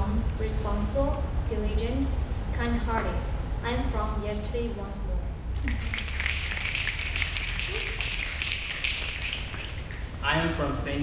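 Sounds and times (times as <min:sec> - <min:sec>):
low steady hum: 0:00.0 - 0:11.0
people snapping fingers: 0:05.6 - 0:10.2.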